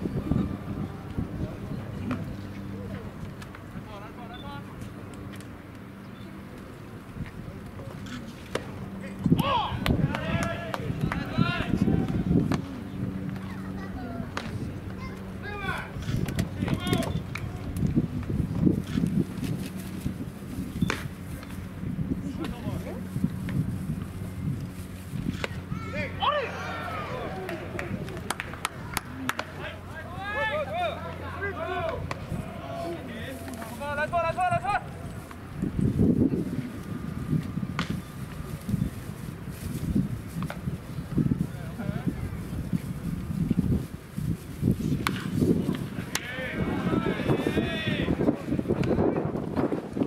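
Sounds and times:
low background murmur: 0.0s - 50.0s
baseball smacking into mitt: 27.4s - 29.6s, 37.8s - 38.0s.

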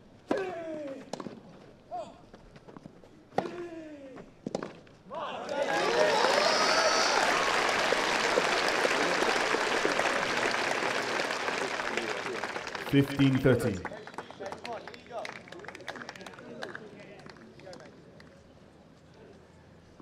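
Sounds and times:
crowd applauding and cheering: 5.5s - 16.4s.

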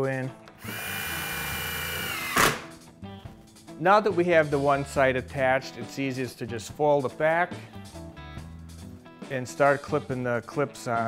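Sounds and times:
power drill motor whine: 0.6s - 2.6s.

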